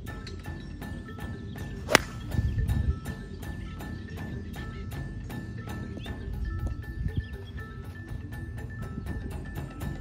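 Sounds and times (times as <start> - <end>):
background music with light beat: 0.0 - 10.0
golf club striking ball: 1.8 - 2.5.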